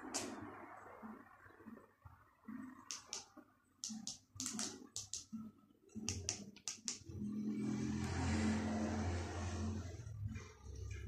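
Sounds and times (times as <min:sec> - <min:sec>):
sharp clicks: 0:02.9 - 0:07.1
motor vehicle passing by: 0:07.1 - 0:11.0.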